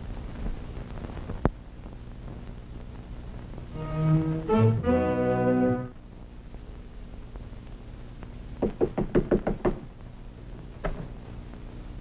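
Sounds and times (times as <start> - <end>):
knuckles knocking on wooden door: 8.6 - 9.8.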